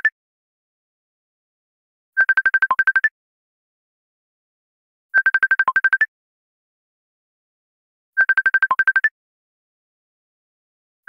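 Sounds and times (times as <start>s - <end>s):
electronic ringtone beeps: 2.2s - 3.1s, 5.2s - 6.0s, 8.2s - 9.1s.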